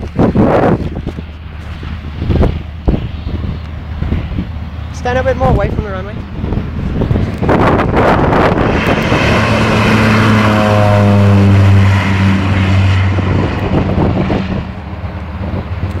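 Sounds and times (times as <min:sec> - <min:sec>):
turboprop plane passing by: 0:00.0 - 0:16.0.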